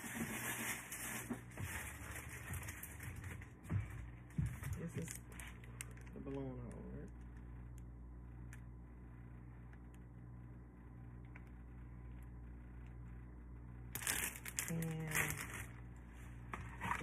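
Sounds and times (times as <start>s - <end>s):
plastic bag crinkling: 0.0s - 3.6s, 4.7s - 6.8s, 13.9s - 16.0s
low steady hum: 0.0s - 17.0s.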